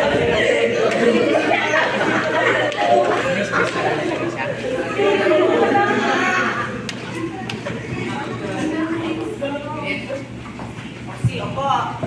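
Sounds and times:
group of people chattering: 0.0s - 12.0s.

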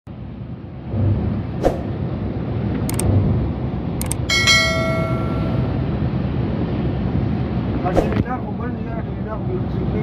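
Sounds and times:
coach engine rumble: 0.6s - 9.9s
sharp clicks: 2.9s - 3.1s, 4.0s - 4.3s
bell chime sound effect: 4.3s - 5.9s.

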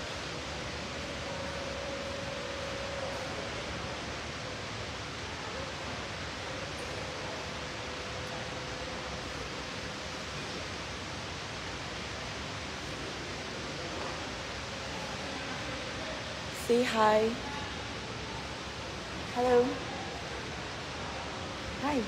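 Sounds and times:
faint hum tone: 0.0s - 22.0s.

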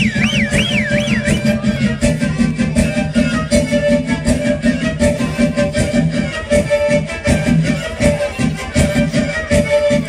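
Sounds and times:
warbling high tone: 0.0s - 1.8s
folk music with driving beat: 0.0s - 10.0s.

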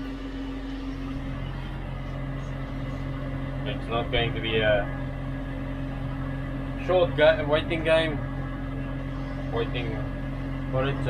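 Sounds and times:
tractor engine low hum: 0.0s - 11.0s.

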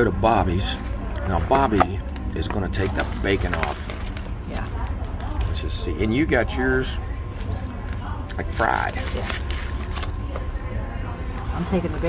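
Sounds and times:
paper wrapper crinkling: 1.0s - 5.4s, 7.3s - 10.4s.

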